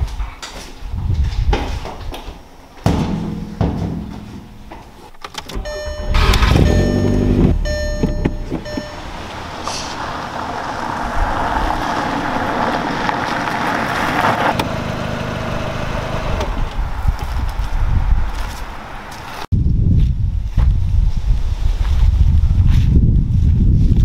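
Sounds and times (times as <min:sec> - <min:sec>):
car engine starting: 0:05.3 - 0:17.0
car engine idling: 0:05.6 - 0:16.6
car driving on dirt track: 0:05.6 - 0:19.4.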